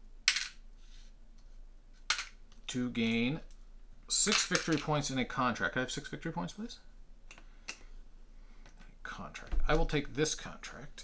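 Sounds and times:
game pieces clattering: 0:04.3 - 0:05.0.

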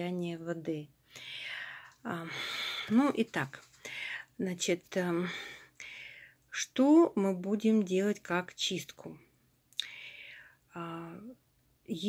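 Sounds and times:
woman whispering: 0:01.4 - 0:05.7.

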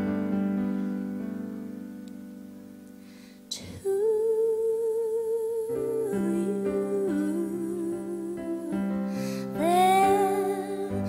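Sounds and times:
sustained piano chords: 0:00.0 - 0:03.2, 0:05.0 - 0:11.0
woman singing slow song: 0:03.5 - 0:11.0.

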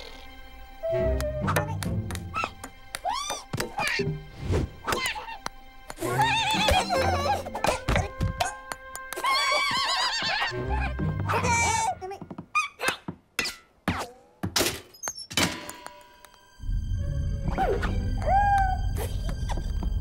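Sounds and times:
cartoon music: 0:00.8 - 0:04.2
warbling cartoon vocal cries: 0:06.0 - 0:12.0.

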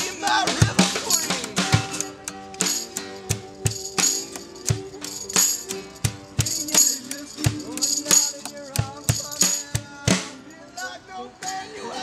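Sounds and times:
steady drum beat: 0:00.0 - 0:10.5
strummed acoustic guitars: 0:00.0 - 0:12.0
tambourine jangling: 0:01.0 - 0:10.0, 0:10.8 - 0:11.8.

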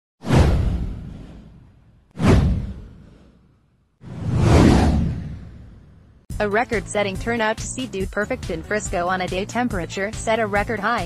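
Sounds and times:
deep whoosh falling in pitch: 0:00.2 - 0:06.2.

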